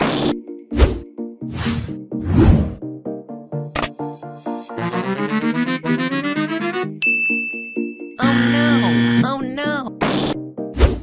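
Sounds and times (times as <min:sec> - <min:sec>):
bright chime ding: 0:07.0 - 0:08.2.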